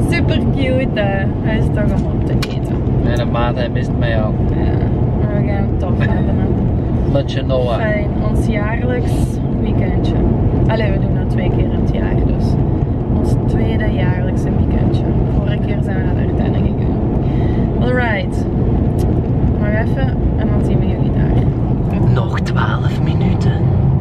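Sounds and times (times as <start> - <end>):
car cabin road rumble: 0.0 - 24.0
person speaking: 1.8 - 3.6, 4.6 - 9.3.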